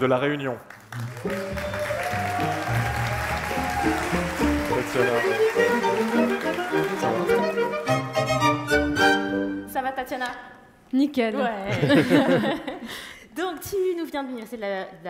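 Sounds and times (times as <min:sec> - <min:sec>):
audience applause: 0:00.7 - 0:09.1
string orchestra playing lively tune: 0:02.1 - 0:09.7.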